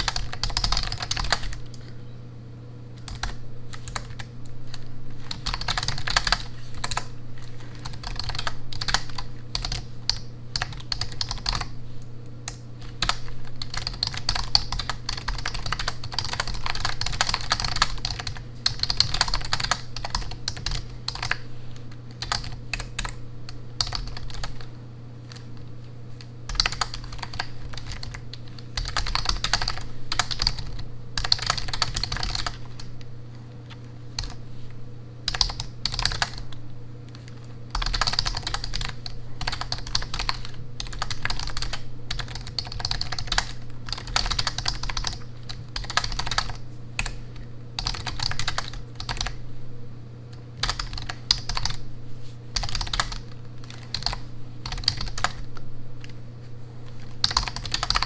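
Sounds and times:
keyboard typing clicks: 0:00.0 - 0:01.9, 0:03.0 - 0:11.7, 0:12.4 - 0:24.7, 0:25.3 - 0:33.1, 0:35.3 - 0:47.2, 0:47.8 - 0:49.4, 0:50.3 - 0:51.8, 0:52.6 - 0:56.2, 0:56.9 - 0:58.0.

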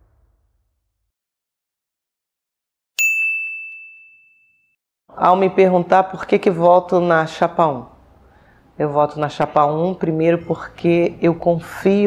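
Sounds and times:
bell-like ding: 0:03.0 - 0:04.8.

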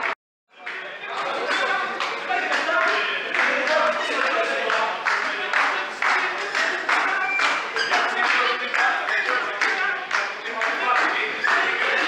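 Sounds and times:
rhythmic clapping: 0:00.0 - 0:12.0
group of people singing: 0:00.6 - 0:12.0.

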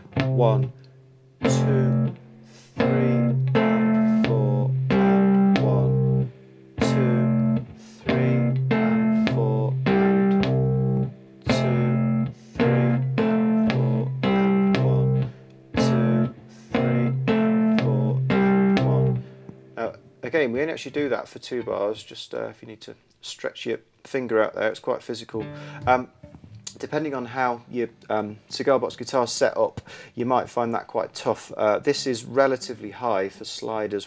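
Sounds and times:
fingerstyle blues guitar riff: 0:00.0 - 0:20.3, 0:25.3 - 0:27.2.

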